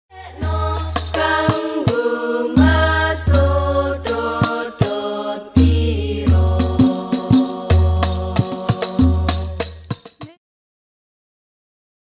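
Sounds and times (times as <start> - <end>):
frame drums striking: 0.4 - 10.4.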